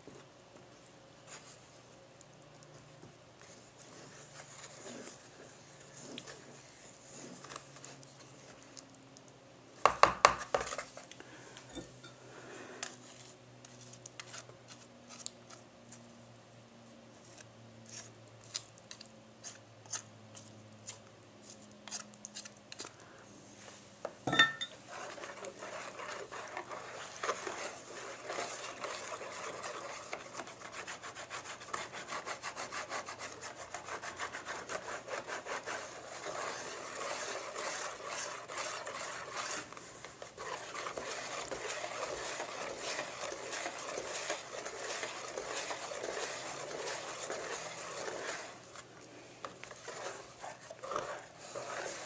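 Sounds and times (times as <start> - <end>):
whisk beating batter in metal bowl: 9.9 - 11.0, 24.6 - 52.0
metallic clank of bowl ringing: 24.3 - 24.7.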